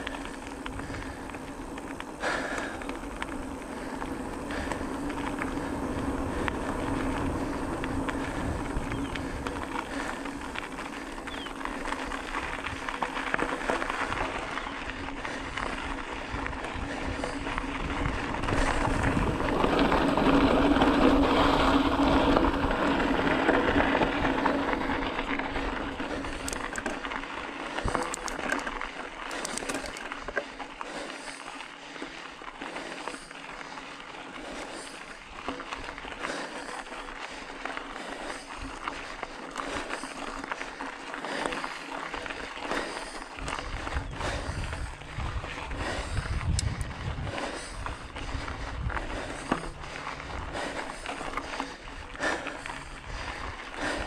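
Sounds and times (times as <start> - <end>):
bicycle tyres rolling: 0.0 - 54.0
constant low hum: 0.0 - 54.0
gravel crunching clicks: 0.0 - 54.0.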